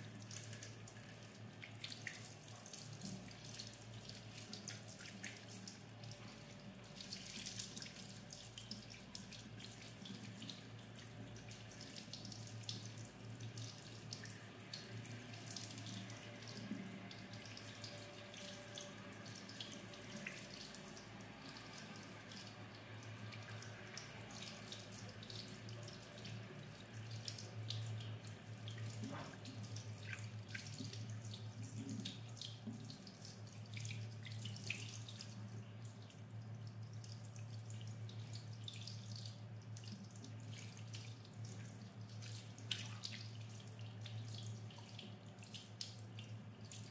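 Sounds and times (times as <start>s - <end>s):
small splashes: 0.2s - 46.9s.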